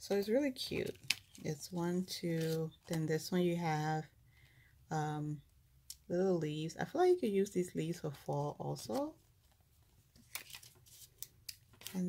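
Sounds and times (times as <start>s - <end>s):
plastic packets crinkling: 0.6s - 1.5s, 10.2s - 12.0s.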